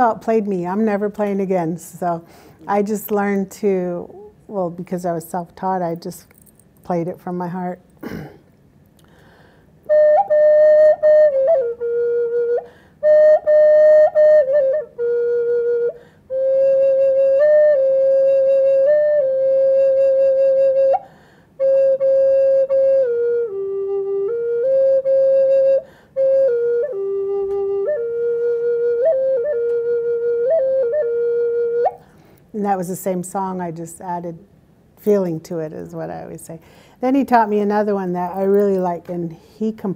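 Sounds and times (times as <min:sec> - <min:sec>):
breaths between phrases: 0:02.2 - 0:02.7, 0:36.6 - 0:37.0
solo flute melody: 0:09.8 - 0:32.0.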